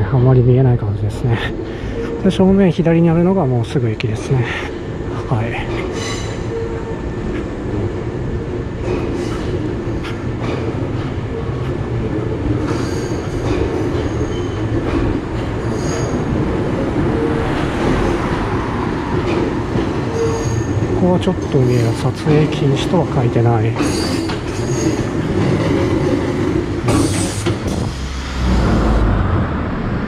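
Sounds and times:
electric train rumbling: 0.0s - 30.0s
high wheel squeals: 5.9s - 7.2s, 15.6s - 18.0s, 20.0s - 20.9s.

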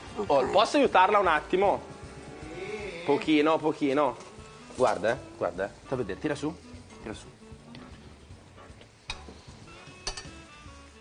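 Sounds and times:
fish and onions sizzling: 0.0s - 11.0s.

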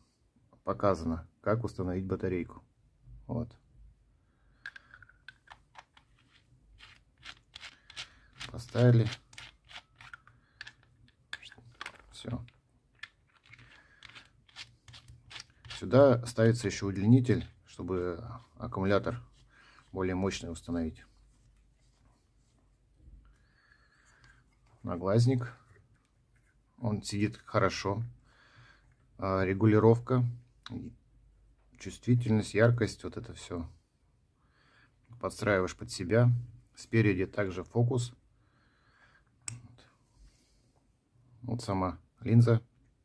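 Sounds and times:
battery clicks and scrapes: 4.6s - 12.2s, 13.0s - 15.8s
faint device handling: 4.6s - 27.5s.

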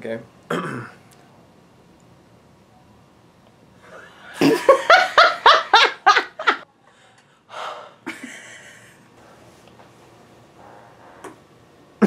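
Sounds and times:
person laughing heartily: 3.9s - 6.6s, 8.0s - 9.0s
breathy laugh: 8.0s - 9.0s.

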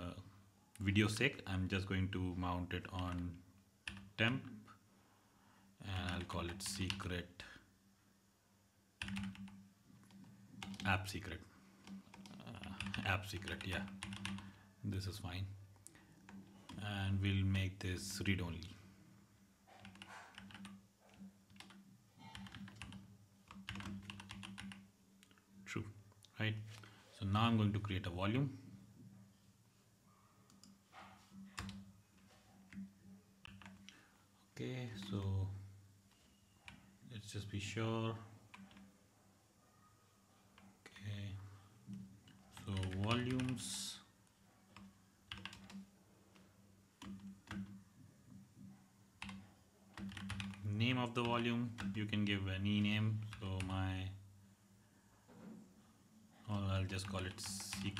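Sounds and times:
faint keyboard typing: 2.6s - 4.5s, 5.9s - 7.6s, 9.0s - 18.9s, 19.6s - 28.1s, 30.3s - 35.3s, 36.0s - 37.0s, 38.1s - 39.1s, 39.8s - 54.0s, 55.8s - 57.9s.

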